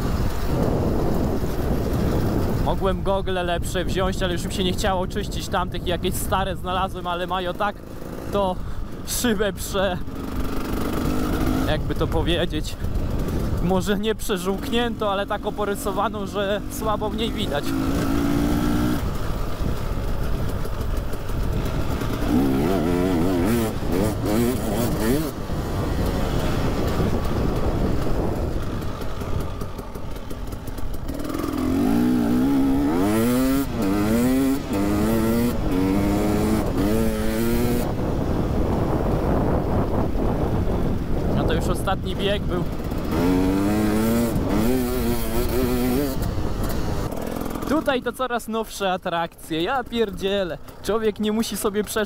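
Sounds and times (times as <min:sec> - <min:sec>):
two-stroke motorcycle engine revving: 0:00.0 - 0:48.3.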